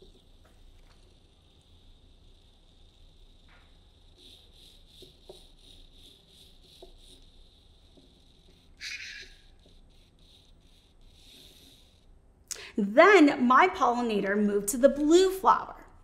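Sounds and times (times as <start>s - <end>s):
small robot motor whirring: 0.0s - 12.2s.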